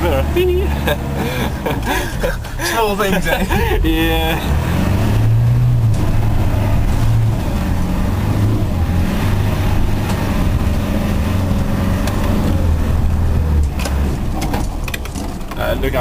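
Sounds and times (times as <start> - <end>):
engine running at low revs: 0.0 - 16.0.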